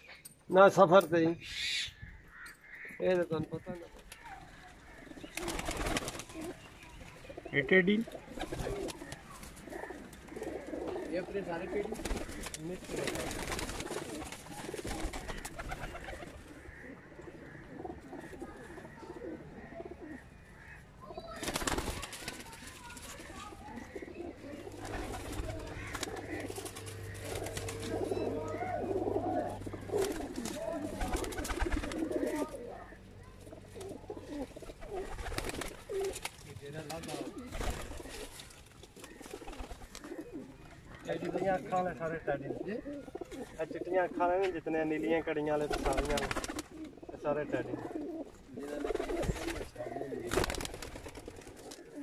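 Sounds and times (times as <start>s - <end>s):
pigeons cooing: 2.8s - 52.0s.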